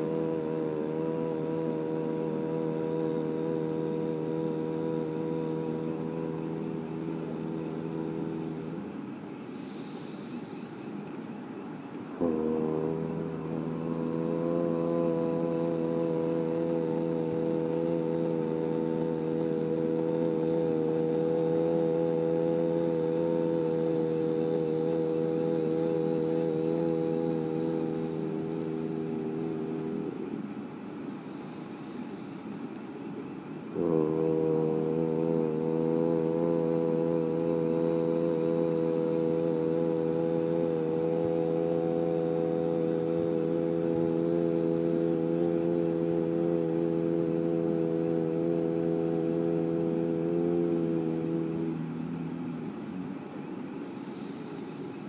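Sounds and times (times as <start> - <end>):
man chanting low tone: 0.0 - 9.1, 12.1 - 30.5, 33.6 - 53.9.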